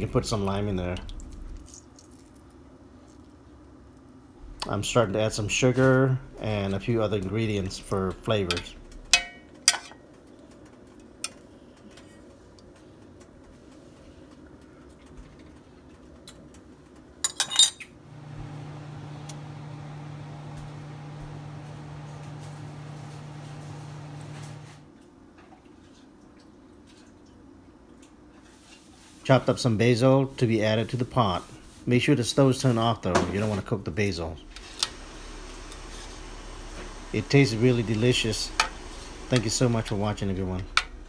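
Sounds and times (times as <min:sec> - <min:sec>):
steady low hum: 0:18.0 - 0:24.9, 0:33.8 - 0:41.0.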